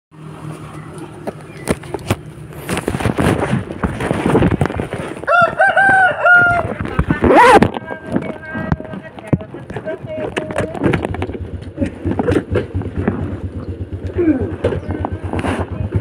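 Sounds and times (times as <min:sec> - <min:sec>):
rustling: 0:00.4 - 0:05.6
rooster crowing: 0:05.2 - 0:06.8.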